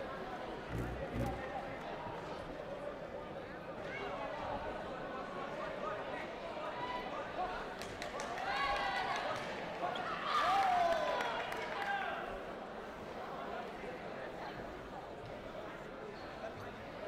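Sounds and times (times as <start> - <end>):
people talking and calling out: 0.0 - 5.1.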